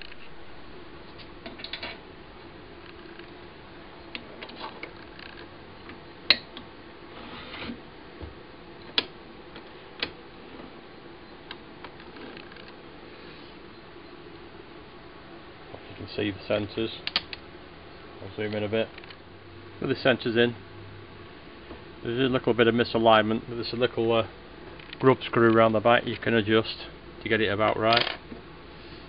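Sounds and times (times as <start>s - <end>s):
sharp clicks: 17.0s - 17.4s.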